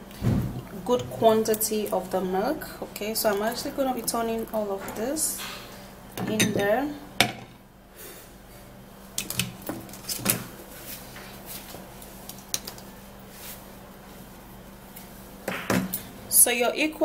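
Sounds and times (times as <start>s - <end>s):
kitchen containers and utensils knocking: 6.2s - 7.5s.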